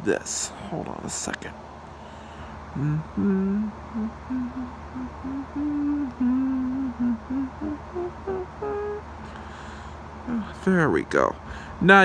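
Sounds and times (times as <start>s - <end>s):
man humming a tune: 2.7s - 10.7s.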